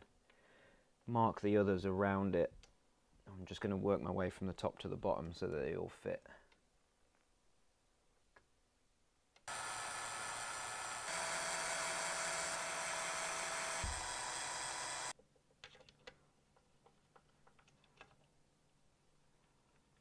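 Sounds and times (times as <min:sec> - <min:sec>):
cordless drill whining: 0:09.5 - 0:15.2.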